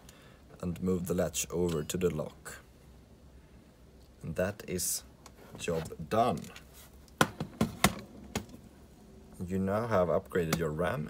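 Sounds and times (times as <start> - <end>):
laptop case knocking on wooden desk: 7.2 - 8.5.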